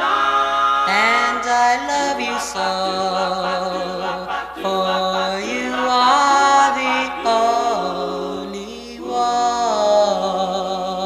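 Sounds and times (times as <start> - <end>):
vocal group singing a cappella: 0.0 - 11.0.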